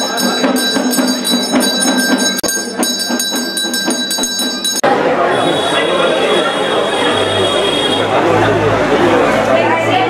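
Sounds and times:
temple bell rung rapidly: 0.0s - 8.3s.

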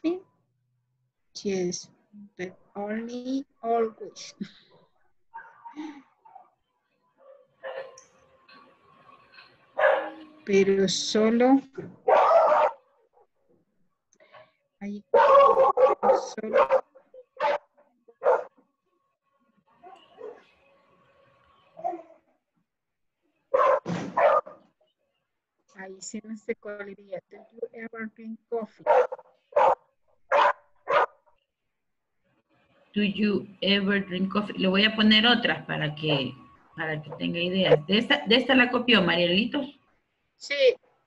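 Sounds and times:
dog barking: 5.3s - 5.7s, 7.2s - 8.0s, 9.8s - 10.2s, 12.0s - 12.9s, 15.1s - 18.5s, 19.8s - 20.5s, 21.8s - 22.2s, 23.5s - 24.6s, 28.8s - 31.2s, 36.0s - 36.4s.

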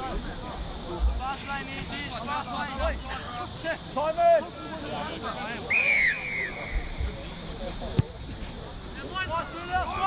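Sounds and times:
voices: 0.0s - 10.0s
referee's whistle blast: 5.7s - 7.0s.

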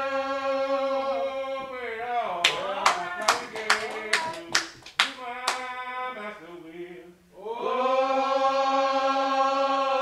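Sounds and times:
group singing: 0.0s - 10.0s
hand claps: 2.4s - 5.7s.

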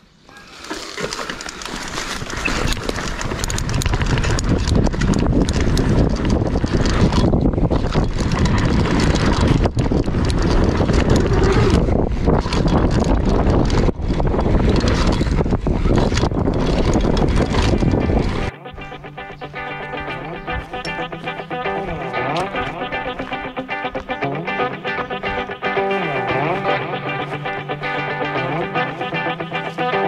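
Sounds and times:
bike rattling over ground: 0.1s - 30.0s
tyre and wind rush: 0.4s - 30.0s.

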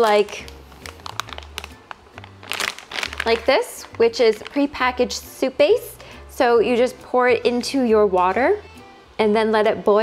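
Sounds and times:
plastic packet crinkling: 0.0s - 5.0s
background music with low bass: 0.0s - 10.0s.

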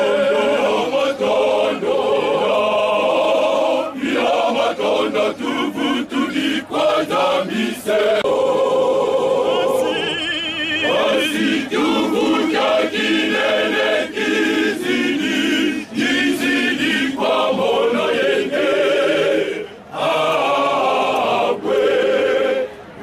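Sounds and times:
men's choir singing a hymn: 0.0s - 22.9s.

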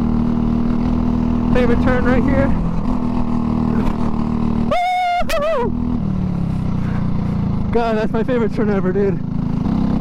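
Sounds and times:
go-kart engine running: 0.0s - 10.0s
driver shouting: 1.5s - 2.6s, 4.6s - 5.8s.

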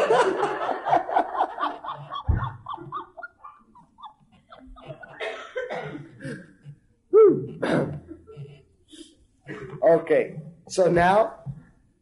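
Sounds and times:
audience laughter: 0.0s - 5.4s
loud cough: 5.1s - 6.5s.

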